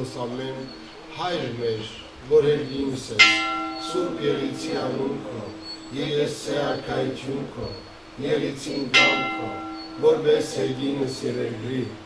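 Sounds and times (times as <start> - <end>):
bell ringing: 3.2 - 7.0, 8.8 - 11.4.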